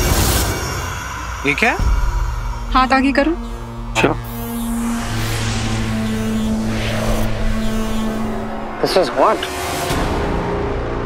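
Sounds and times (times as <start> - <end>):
low drone: 0.0 - 11.0
whooshing sound effect: 2.7 - 10.1.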